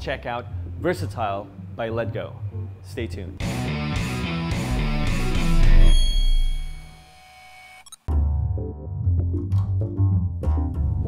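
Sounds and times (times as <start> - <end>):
bright chime: 5.7 - 7.6.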